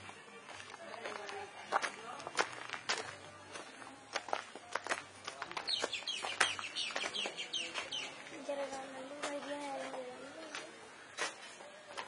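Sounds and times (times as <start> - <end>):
footsteps on dirt and gravel: 0.0 - 12.0
high falling bird calls: 5.7 - 8.2.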